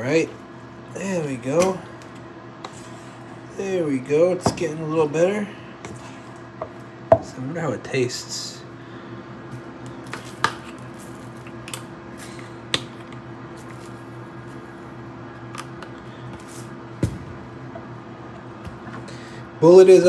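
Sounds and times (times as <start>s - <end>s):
steady low hum: 0.0s - 20.0s.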